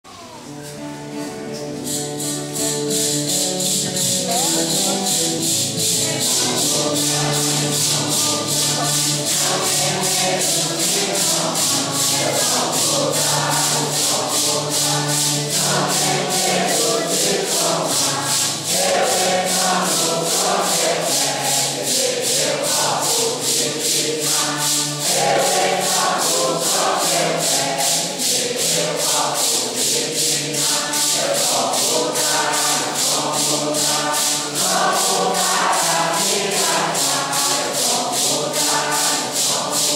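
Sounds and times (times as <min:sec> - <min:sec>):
congregation singing a hymn: 0:00.1 - 0:39.9
maracas shaken: 0:00.1 - 0:39.9.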